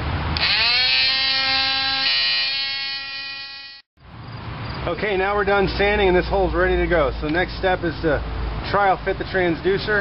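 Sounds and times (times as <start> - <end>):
power tool sanding fiberglass: 0.4 - 3.8.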